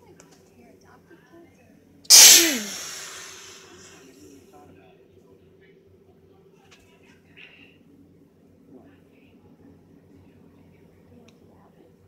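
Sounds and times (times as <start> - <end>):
person sneezing: 2.1 - 3.9.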